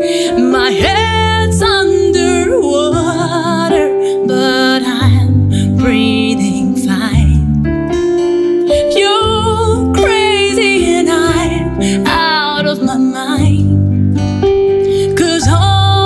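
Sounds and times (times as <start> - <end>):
acoustic guitar: 0.0 - 16.0
woman singing a ballad: 0.0 - 16.0.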